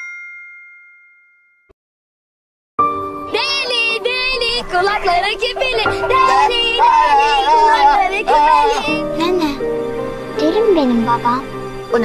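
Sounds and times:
bell-like ding: 0:00.0 - 0:01.8.

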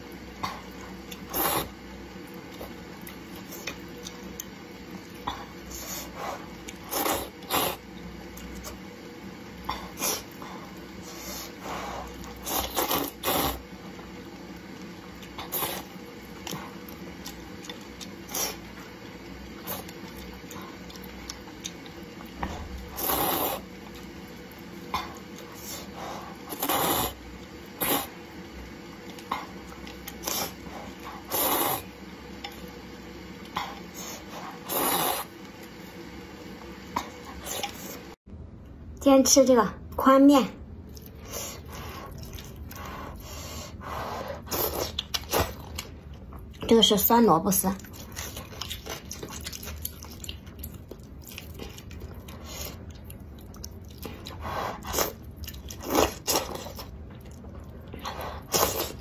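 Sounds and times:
slurping noodles: 0:00.6 - 0:01.8, 0:05.7 - 0:07.9, 0:09.8 - 0:13.9, 0:15.2 - 0:18.7, 0:22.2 - 0:23.9, 0:25.0 - 0:28.3, 0:29.2 - 0:32.0, 0:33.5 - 0:35.4, 0:41.1 - 0:45.9, 0:54.0 - 0:57.0, 0:58.0 - 0:59.0.

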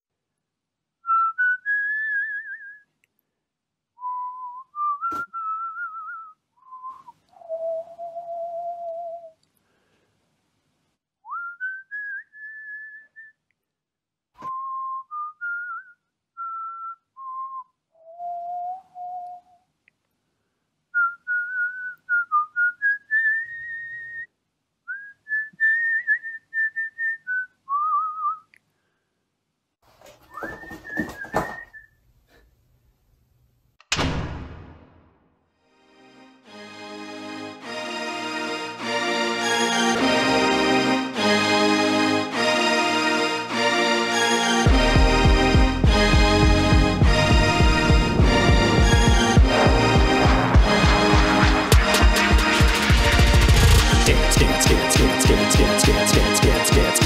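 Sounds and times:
person whistling a melody: 0:01.0 - 0:02.9, 0:04.0 - 0:09.4, 0:11.3 - 0:13.4, 0:14.4 - 0:19.6, 0:21.0 - 0:24.3, 0:24.9 - 0:28.5, 0:30.3 - 0:31.9, 0:54.0 - 0:57.0
brief noisy fuller sound: 0:47.0 - 0:52.2.

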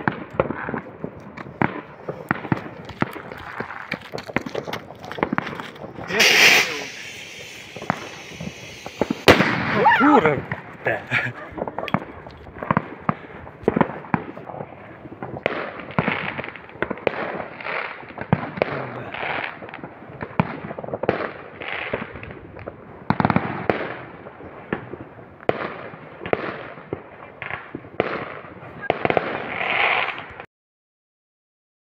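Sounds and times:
fireworks bangs and crackling: 0:00.0 - 0:30.5.

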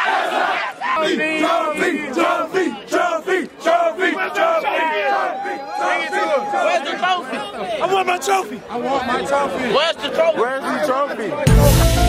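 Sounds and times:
young men chanting and yelling: 0:00.0 - 0:11.7.

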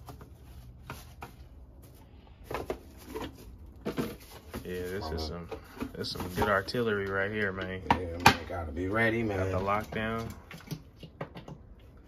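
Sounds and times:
plastic knocks and clunks: 0:09.7 - 0:11.8.

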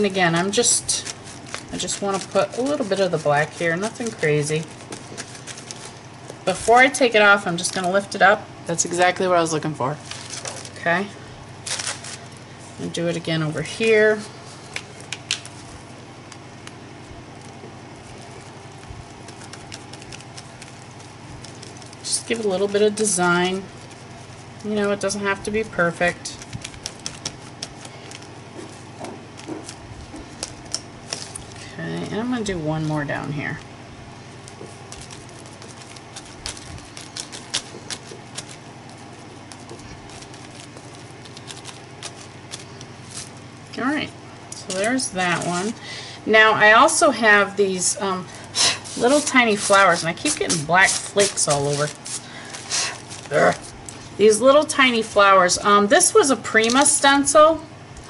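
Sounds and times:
sponge patting on paper: 0:00.0 - 0:07.9, 0:14.6 - 0:31.6, 0:34.2 - 0:43.4, 0:48.7 - 0:54.1.

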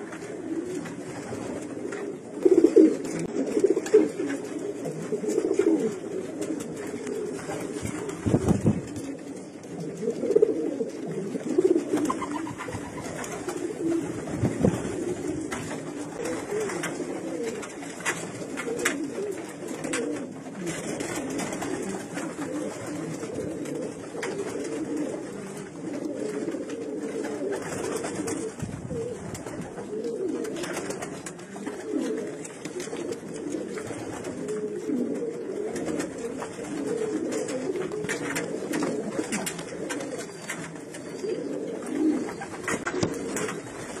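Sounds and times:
pigeons cooing: 0:00.0 - 0:44.0.

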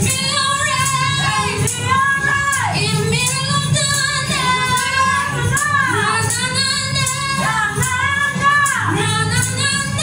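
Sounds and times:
backing music: 0:00.0 - 0:10.0
woman singing soul song: 0:00.0 - 0:10.0.

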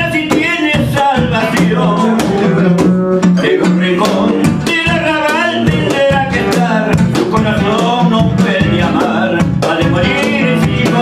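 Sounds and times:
acoustic guitar: 0:00.0 - 0:11.0
man singing: 0:00.0 - 0:11.0.

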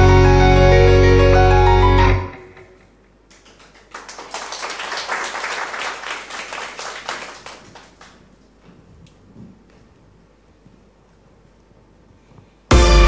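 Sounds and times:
audience clapping: 0:03.2 - 0:08.5.

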